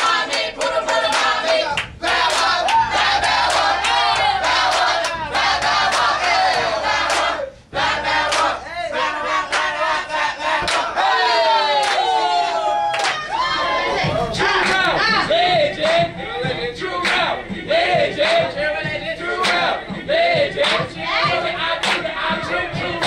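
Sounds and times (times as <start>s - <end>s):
hand claps: 10.6s - 10.9s, 11.8s - 12.0s, 12.9s - 13.2s, 17.0s - 17.3s, 19.4s - 19.6s, 20.6s - 20.9s, 21.8s - 22.1s
young men shouting: 10.9s - 15.3s.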